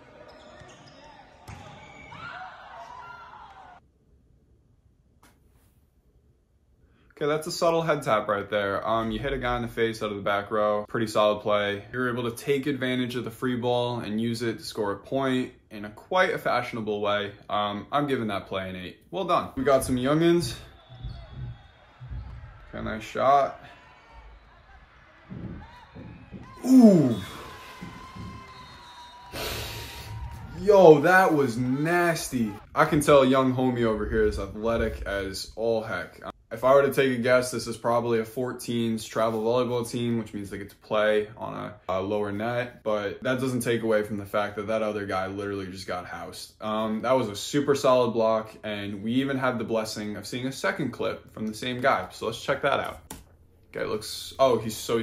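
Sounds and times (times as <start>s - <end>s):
volleyball strike: 1.4s - 2.6s, 24.7s - 29.1s
players calling out: 19.6s - 33.4s
man hissing breath through mouth: 29.3s - 30.1s.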